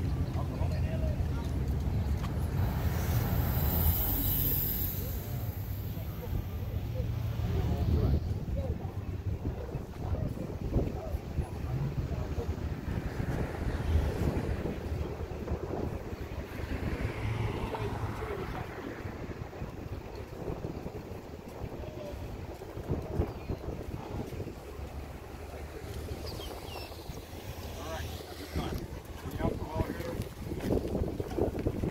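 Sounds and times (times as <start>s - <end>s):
faint indistinct voices: 0.0s - 31.9s
wind buffeting microphone: 0.0s - 31.9s.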